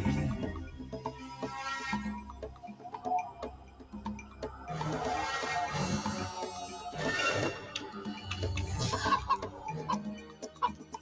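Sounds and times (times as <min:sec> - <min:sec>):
cartoon chicken clucking: 0:08.9 - 0:10.0.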